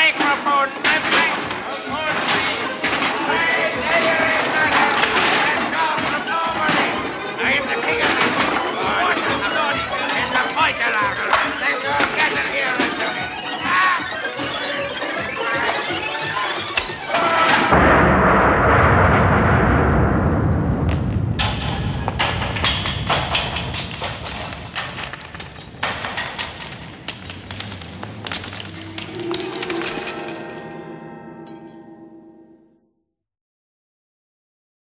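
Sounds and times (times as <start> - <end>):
crashes and breaking clatter: 0.1 - 31.8
people shouting: 3.1 - 8.2, 13.5 - 17.8
loud explosion: 17.4 - 23.7
low held tone: 28.3 - 32.7.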